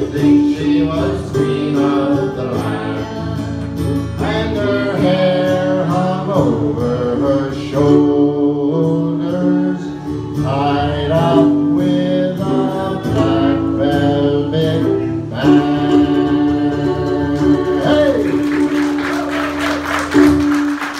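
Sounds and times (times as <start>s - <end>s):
man singing folk ballad: 0.0s - 18.8s
acoustic guitars strumming: 0.0s - 20.9s.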